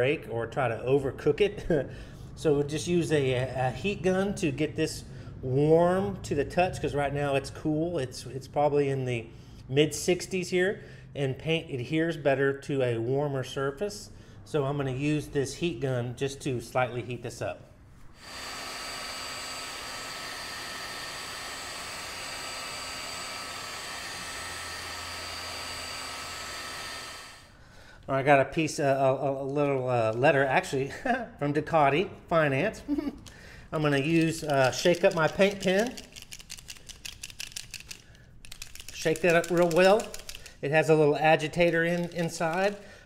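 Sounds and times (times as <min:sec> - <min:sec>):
heat gun fan blowing: 0:16.8 - 0:28.0, 0:33.0 - 0:43.0
paint pen ball rattling: 0:34.1 - 0:40.6, 0:41.6 - 0:42.8.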